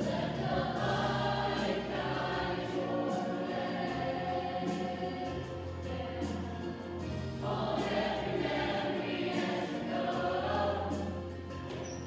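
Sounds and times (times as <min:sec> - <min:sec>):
chorus singing held notes: 0:00.0 - 0:12.0.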